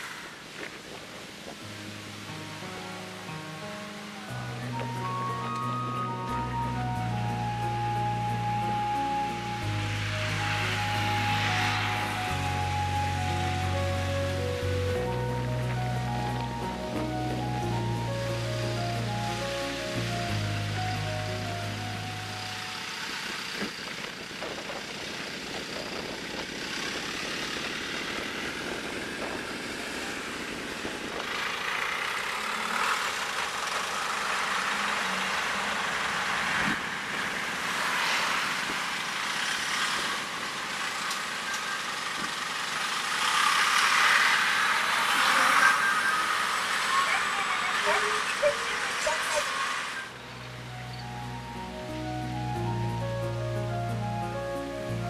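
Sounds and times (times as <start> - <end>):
bus driving past: 0.0 - 55.0
bus engine and tyres: 0.0 - 55.0
background music: 1.6 - 23.3, 50.0 - 55.0.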